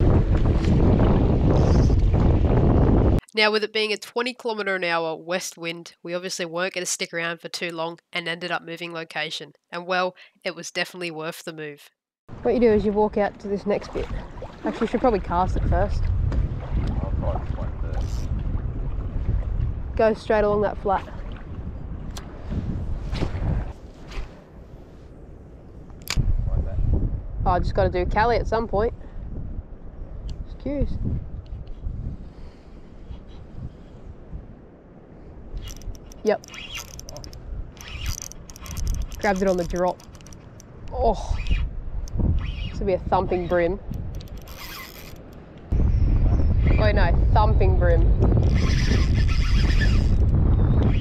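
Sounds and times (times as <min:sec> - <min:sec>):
gusty wind buffeting microphone: 0:00.0 - 0:03.2, 0:12.3 - 0:51.0.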